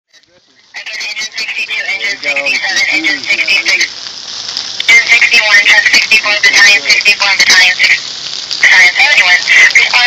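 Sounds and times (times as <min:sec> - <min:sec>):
tinny dispatcher voice on scanner: 0:00.1 - 0:03.9, 0:04.8 - 0:08.0, 0:08.6 - 0:10.0.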